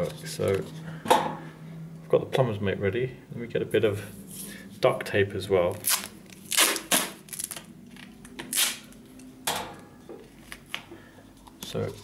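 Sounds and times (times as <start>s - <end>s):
duct tape ripping: 5.7s - 9.0s.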